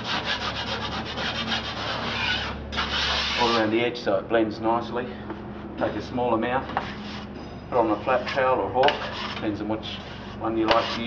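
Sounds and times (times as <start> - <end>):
knife scraping plasterboard: 0.0 - 3.7, 6.7 - 11.0.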